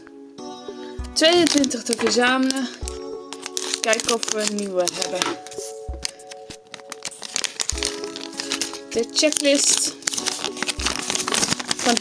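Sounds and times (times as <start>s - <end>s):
background music with held tones: 0.0s - 12.0s
plastic bag crinkling: 1.2s - 12.0s.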